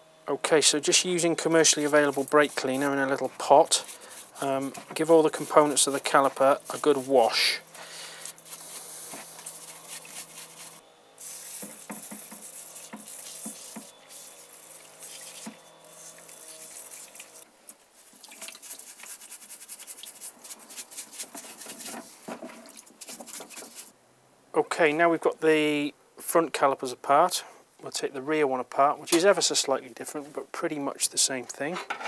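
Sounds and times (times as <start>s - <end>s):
brush scrubbing metal parts: 0.5s - 17.4s, 18.0s - 23.9s
liquid sloshing and dripping: 11.3s - 17.4s, 18.0s - 20.3s.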